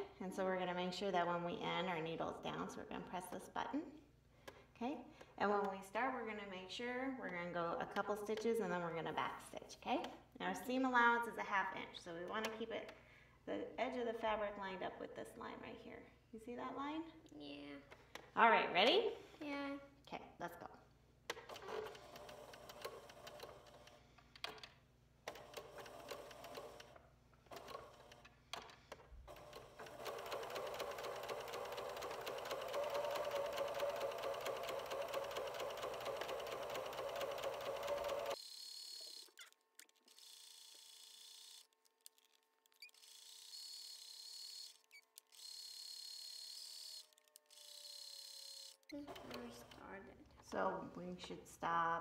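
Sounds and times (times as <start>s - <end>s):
electric sewing machine sewing: 21.5s - 24.0s, 25.3s - 28.2s, 29.3s - 41.7s, 42.9s - 50.0s.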